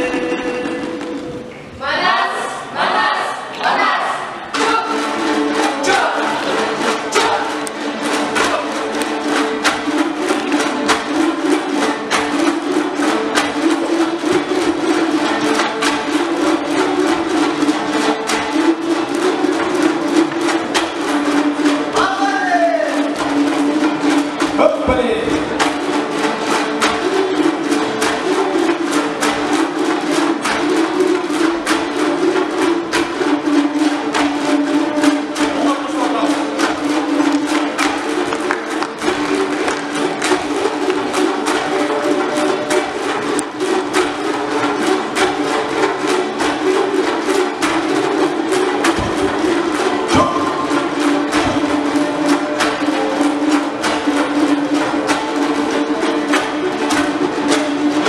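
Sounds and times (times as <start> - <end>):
lutes strumming fast rhythm: 0.0 - 58.0.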